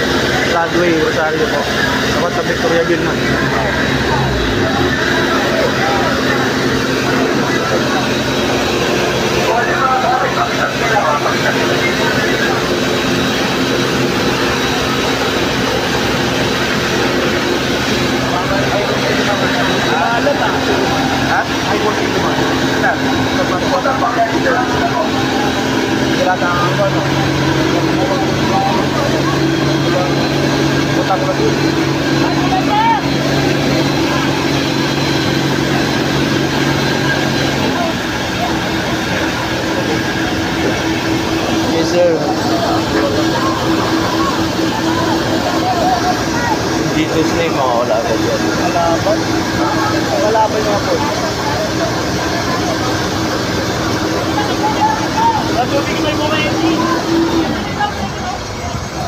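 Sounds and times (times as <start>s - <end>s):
crowd chatter: 0.0s - 59.0s
fire truck engine droning: 0.0s - 59.0s.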